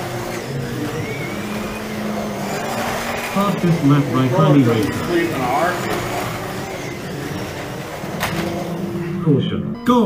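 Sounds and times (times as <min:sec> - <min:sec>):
slot cars whirring on track: 0:00.0 - 0:09.8.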